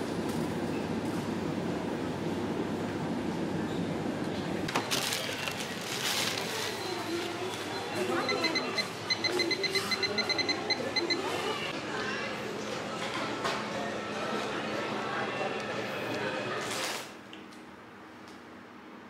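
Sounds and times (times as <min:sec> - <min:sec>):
store noise: 0:03.1 - 0:11.8
voices: 0:06.2 - 0:16.6
short electronic beeps: 0:08.2 - 0:11.2.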